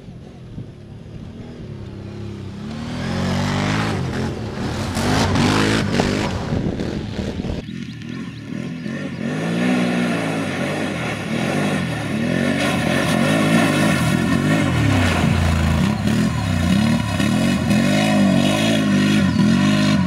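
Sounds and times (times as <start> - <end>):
atv engine revving: 0.0 - 20.0.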